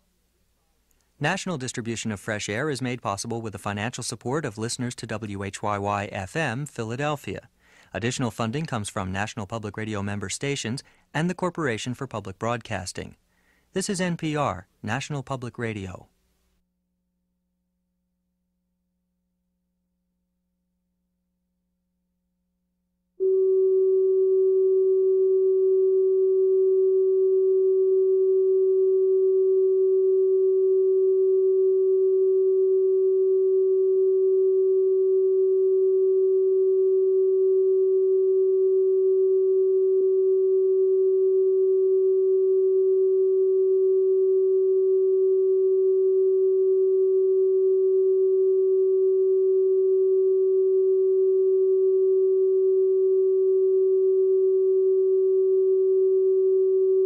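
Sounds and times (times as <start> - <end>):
electronic sine test tone: 23.2 - 57.0.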